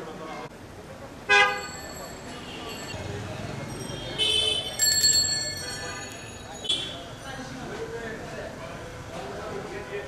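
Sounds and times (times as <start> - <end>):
low hum of street noise: 0.0 - 10.0
vehicle horn toot: 1.3 - 2.9, 4.0 - 4.8.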